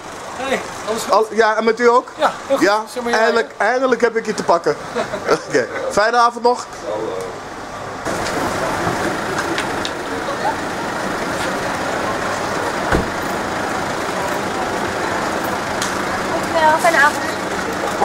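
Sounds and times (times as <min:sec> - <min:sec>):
street traffic: 0:00.0 - 0:18.0
short thump: 0:12.9 - 0:13.2.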